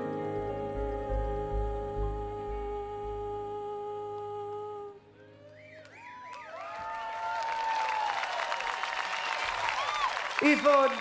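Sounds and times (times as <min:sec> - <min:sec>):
audience whistling and cheering: 0:05.3 - 0:11.0
applause: 0:05.5 - 0:11.0.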